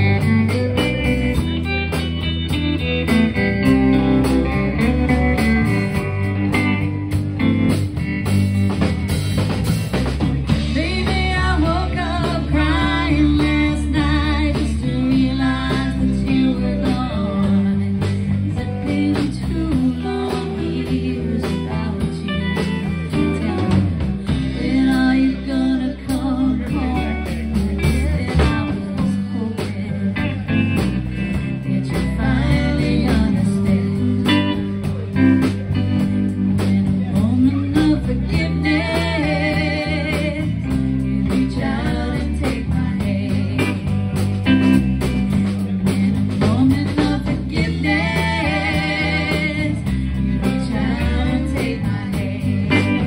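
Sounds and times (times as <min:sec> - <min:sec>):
live band playing: 0:00.0 - 0:53.0
person singing: 0:10.5 - 0:53.0.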